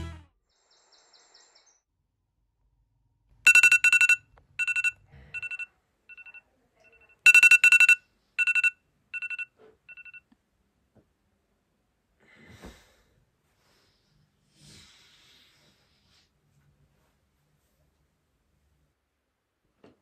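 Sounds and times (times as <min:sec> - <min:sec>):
phone alarm beeping: 0:03.5 - 0:10.2.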